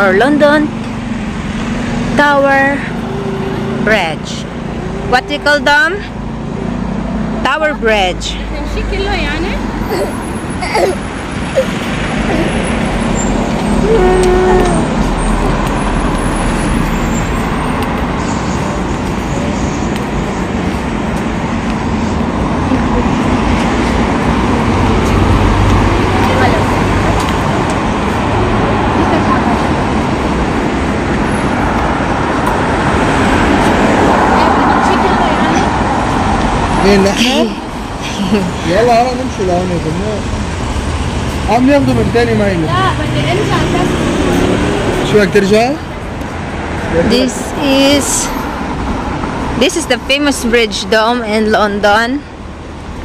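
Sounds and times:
cars driving past: 0.0 - 53.0.

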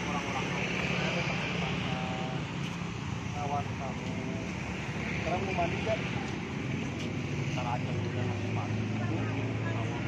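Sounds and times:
city traffic hum: 0.0 - 10.0.

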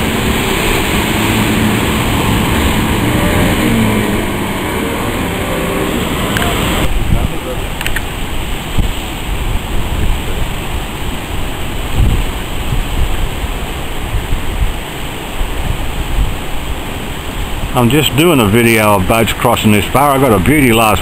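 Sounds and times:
surf breaking: 0.0 - 13.8
wind buffeting microphone: 0.0 - 17.7.

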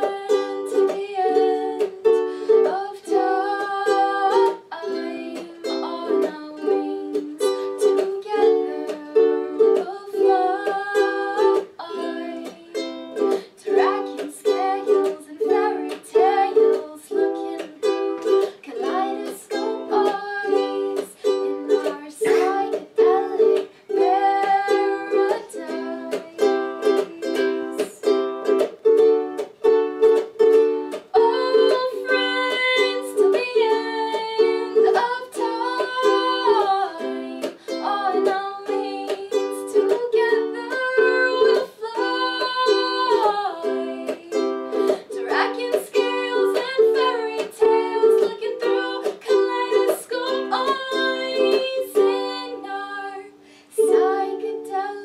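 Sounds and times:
woman singing: 0.0 - 28.6, 30.8 - 55.0
ukulele strumming: 0.0 - 55.0.

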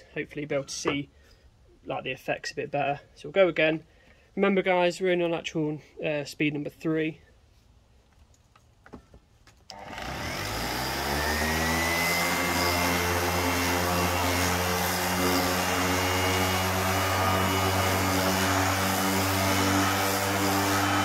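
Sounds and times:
orbital sander sanding wood: 9.7 - 21.0.

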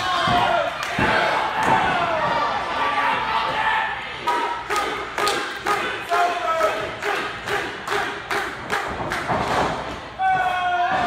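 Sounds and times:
thuds on a wrestling ring: 8.8 - 10.1.

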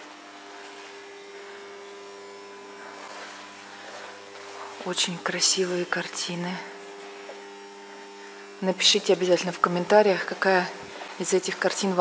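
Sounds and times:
steady hum with tones: 0.0 - 12.0.

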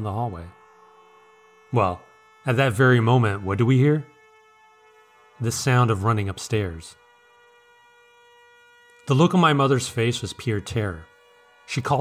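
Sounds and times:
faint held drone note: 0.0 - 12.0.

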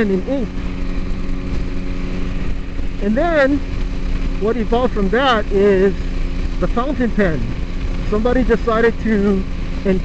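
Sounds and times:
machine rumbling and humming: 0.0 - 10.0.

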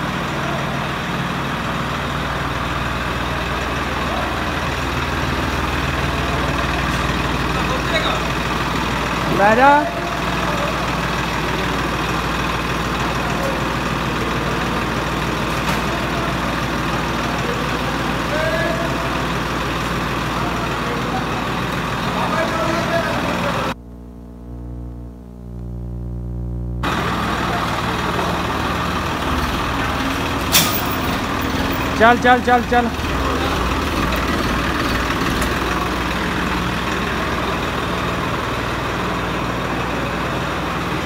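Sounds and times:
tractor diesel engine running: 0.0 - 25.5, 26.8 - 41.0.

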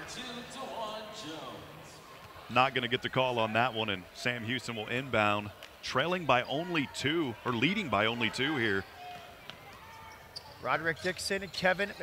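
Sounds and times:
faint voices echoing in a gymnasium: 0.0 - 12.0.

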